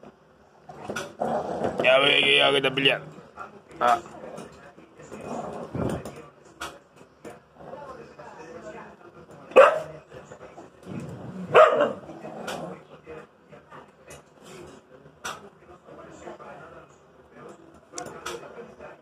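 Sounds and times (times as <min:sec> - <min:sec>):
dogs growling: 0:00.6 - 0:02.1, 0:04.0 - 0:06.2, 0:07.5 - 0:08.0, 0:10.8 - 0:12.9
dog barking sharply: 0:09.6 - 0:09.9, 0:11.5 - 0:12.0.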